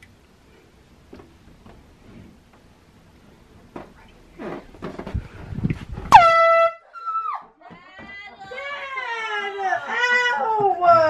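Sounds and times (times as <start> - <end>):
air horn blast: 6.1 - 6.8.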